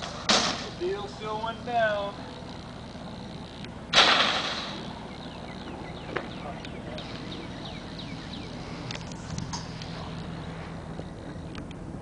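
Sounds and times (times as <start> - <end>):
loud bang in van cargo area: 3.9 - 4.8.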